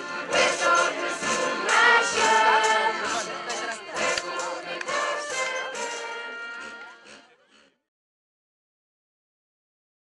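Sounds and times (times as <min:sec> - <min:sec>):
group singing in chorus: 0:00.0 - 0:07.1.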